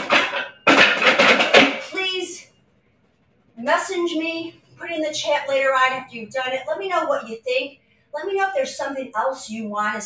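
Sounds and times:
dumbbell weight plates rattling: 0.0 - 1.9.

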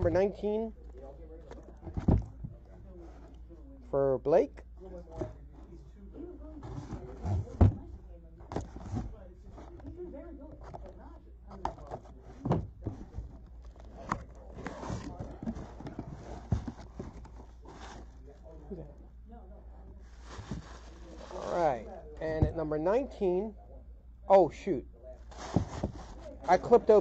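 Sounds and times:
paper rustling: 12.8 - 18.2, 20.1 - 21.5.

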